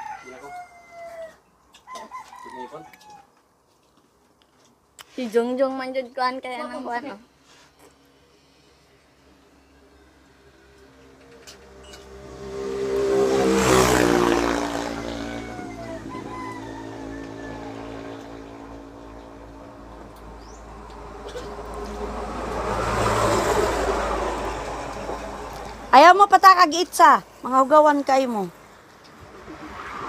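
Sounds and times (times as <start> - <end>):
vehicles passing on road: 6.6 - 30.0.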